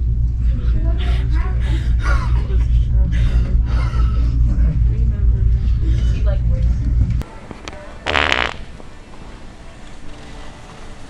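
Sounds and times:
deep low rumble: 0:00.0 - 0:07.2
fake fart noise: 0:08.0 - 0:08.7.

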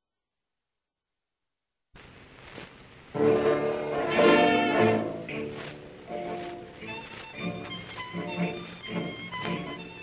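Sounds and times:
record surface hiss and crackle: 0:00.0 - 0:10.0.

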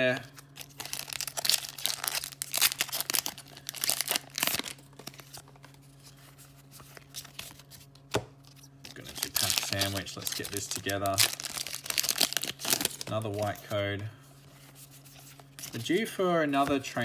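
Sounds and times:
trading cards rustling: 0:00.3 - 0:17.0
foil wrapper crinkling and tearing: 0:00.4 - 0:05.8, 0:08.6 - 0:13.6.

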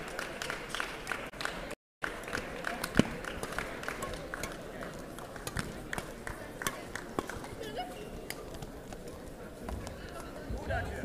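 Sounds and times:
murmur of voices: 0:00.0 - 0:11.0
rackets smacking shuttlecock: 0:02.8 - 0:07.6.

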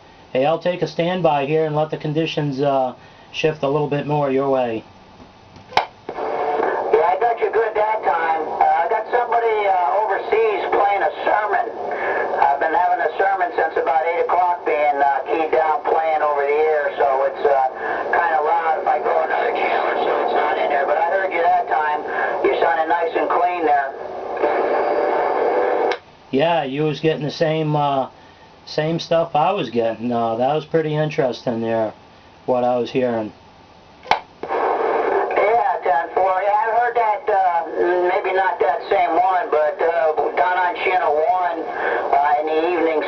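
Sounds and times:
radio static: 0:05.7 - 0:33.3, 0:34.1 - 0:43.0
garbled radio voices: 0:06.1 - 0:25.9, 0:34.4 - 0:43.0.

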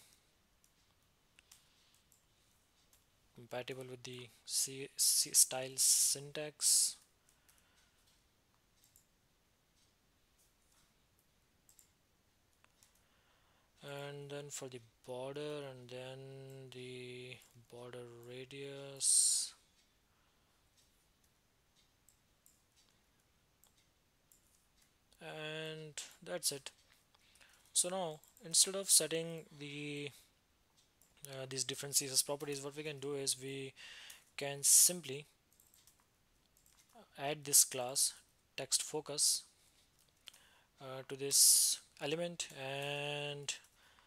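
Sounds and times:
faint keyboard clicks: 0:00.0 - 0:04.3, 0:07.0 - 0:13.1, 0:20.7 - 0:25.2, 0:35.1 - 0:37.0.

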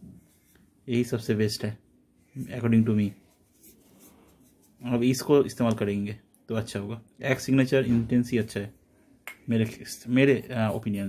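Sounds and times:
man talking: 0:00.8 - 0:01.8, 0:02.4 - 0:03.2, 0:04.8 - 0:08.8, 0:09.4 - 0:11.0.

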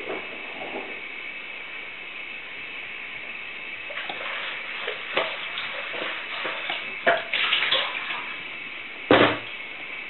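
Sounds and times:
washing machine drum tumbling: 0:03.9 - 0:08.5, 0:09.1 - 0:09.6
water sloshing and splashing: 0:03.9 - 0:08.6.

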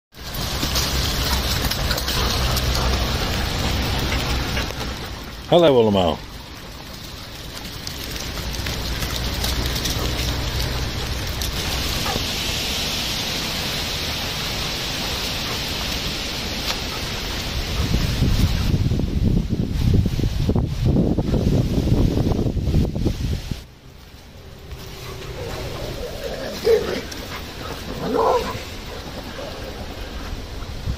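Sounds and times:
rustling hiss: 0:00.2 - 0:30.9
wind on microphone: 0:17.4 - 0:23.7, 0:29.8 - 0:30.9.

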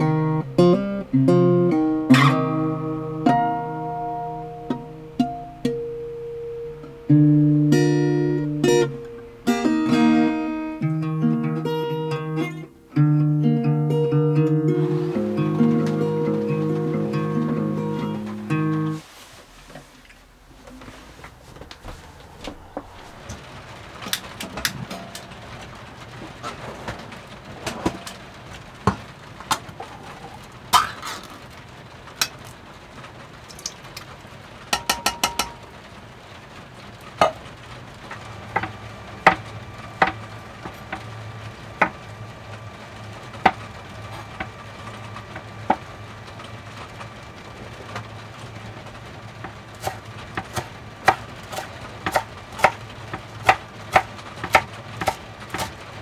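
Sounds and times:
low steady hum: 0:00.0 - 0:56.0
knife chopping kale: 0:49.8 - 0:52.8, 0:53.4 - 0:55.8.

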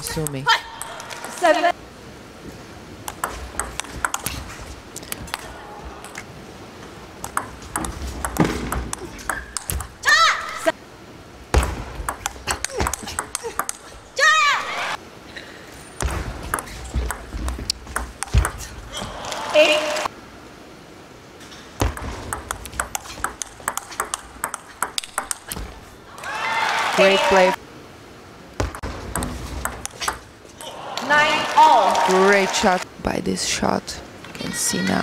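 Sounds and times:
table tennis ball clicks: 0:03.1 - 0:04.4, 0:07.2 - 0:09.9, 0:12.0 - 0:13.9, 0:21.9 - 0:25.7, 0:28.7 - 0:30.3
loud drawn-out shouts: 0:05.4 - 0:06.4, 0:14.1 - 0:15.0, 0:18.9 - 0:20.1, 0:26.1 - 0:27.6, 0:30.6 - 0:32.8.

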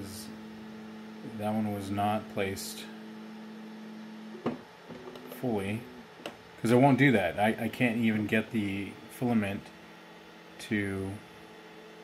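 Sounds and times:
machine electric hum: 0:00.0 - 0:12.0.

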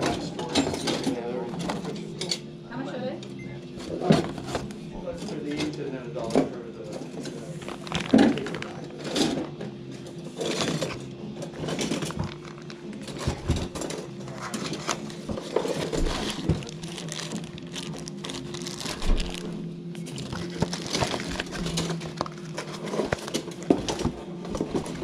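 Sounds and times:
steady low hum: 0:01.5 - 0:25.0
cardboard and plastic packaging rustling: 0:03.8 - 0:25.0.

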